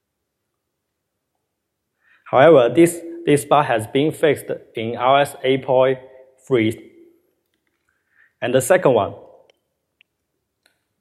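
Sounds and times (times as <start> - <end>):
man speaking: 2.3 - 6.9, 8.4 - 9.4.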